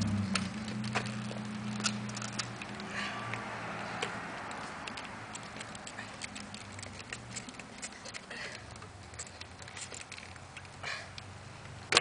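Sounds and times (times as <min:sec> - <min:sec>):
scooter wheels rolling on asphalt: 0:00.0 - 0:12.0
small irregular clicks and clacks: 0:00.0 - 0:12.0.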